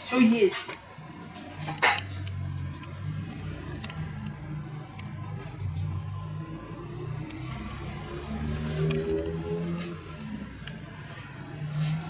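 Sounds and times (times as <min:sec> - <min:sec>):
vehicle engine running: 0:01.3 - 0:12.0.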